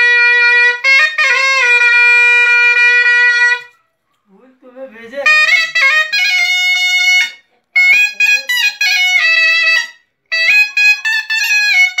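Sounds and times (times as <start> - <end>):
shehnai reedy note: 0.0 - 3.8, 5.2 - 12.0.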